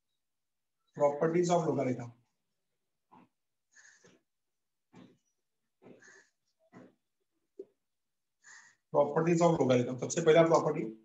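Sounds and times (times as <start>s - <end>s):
marker pen on whiteboard: 0.9s - 11.0s.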